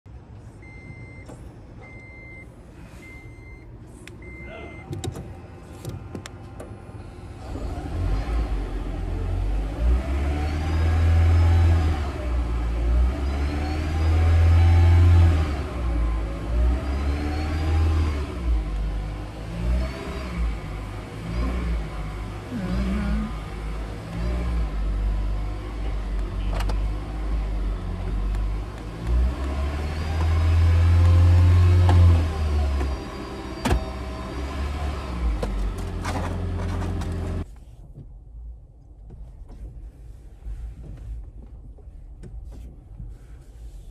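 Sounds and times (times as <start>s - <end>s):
car engine revving: 7.4s - 37.4s.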